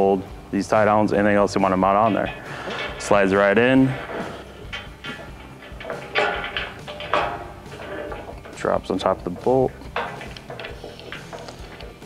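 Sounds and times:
metal hardware sliding in rail: 1.6 - 12.0
scrapes and knocks: 1.6 - 12.0.

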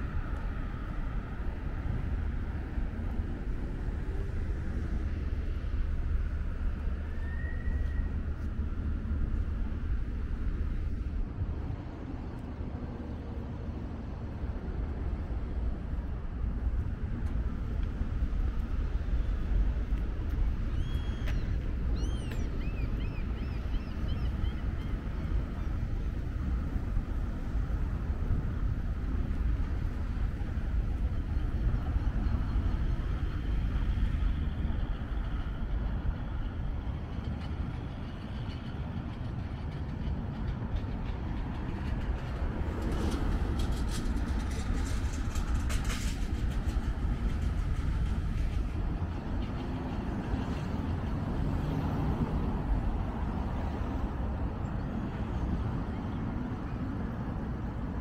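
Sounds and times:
low city rumble: 0.0 - 58.0.

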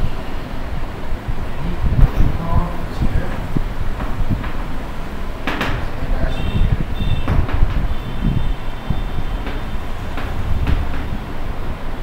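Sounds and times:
loud steady low rumble: 0.0 - 12.0.

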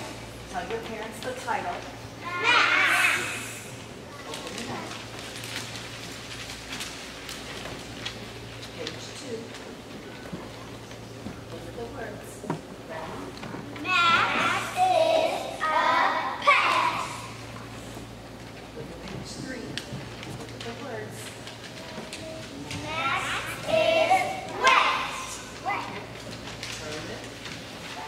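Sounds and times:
high-pitched child's voice: 2.2 - 3.6, 13.8 - 17.4, 22.0 - 26.0
children chattering: 2.2 - 4.4, 13.7 - 17.5, 21.7 - 26.2.

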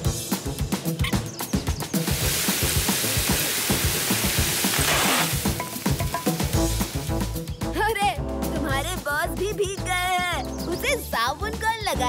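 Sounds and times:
background music with steady beat: 0.0 - 12.0
water jet spraying from hose: 1.9 - 7.4.

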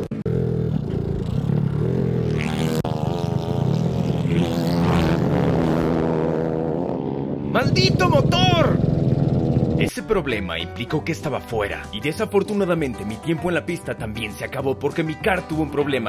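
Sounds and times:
kart engine running: 0.0 - 9.9
voice shouting: 7.6 - 8.8.

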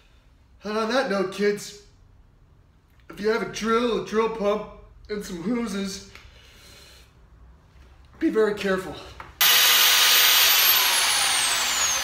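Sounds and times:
power drill whining: 9.4 - 12.0.

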